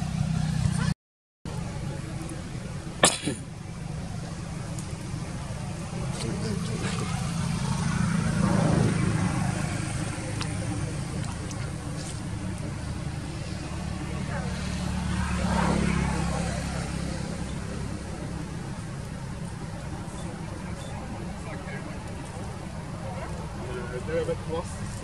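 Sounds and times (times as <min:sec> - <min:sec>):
faint voices: 0:00.0 - 0:25.0
vehicle engines passing: 0:00.0 - 0:25.0.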